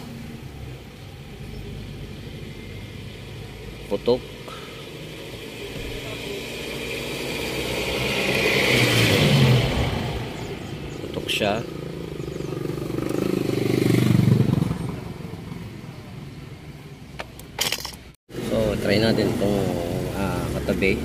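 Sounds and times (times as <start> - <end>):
motor vehicles passing by: 0.0 - 21.0.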